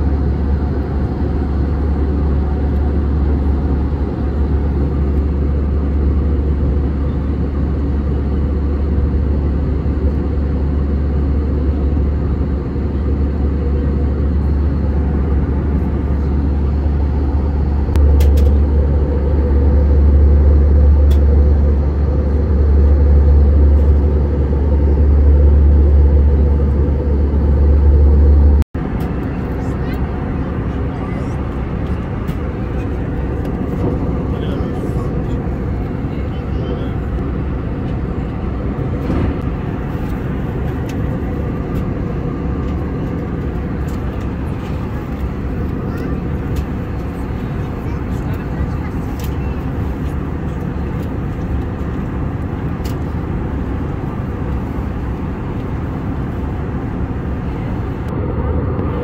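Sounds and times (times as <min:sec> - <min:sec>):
airliner cabin engine rumble: 0:00.0 - 0:59.0.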